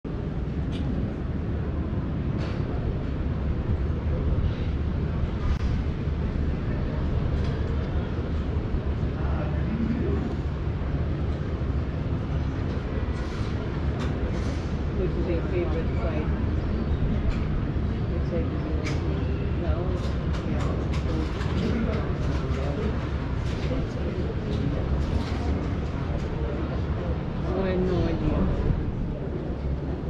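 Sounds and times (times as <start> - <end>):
wind buffeting microphone: 0.1 - 30.0
faint voices of people: 0.6 - 30.0.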